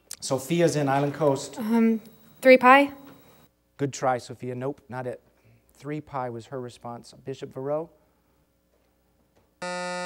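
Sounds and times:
electronic buzzer: 9.6s - 10.0s.

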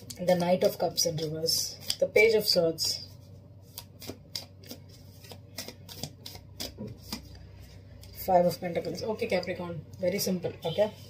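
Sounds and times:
cards being shuffled: 0.2s - 9.0s.

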